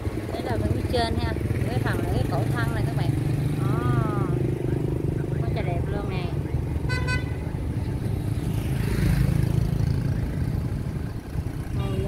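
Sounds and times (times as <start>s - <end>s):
motorcycle engine rumbling: 0.0s - 12.0s
street traffic: 0.0s - 12.0s.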